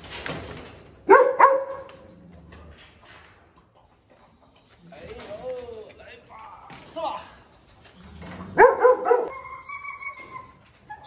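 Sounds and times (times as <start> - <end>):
dog barking: 1.1 - 1.9, 8.6 - 9.4.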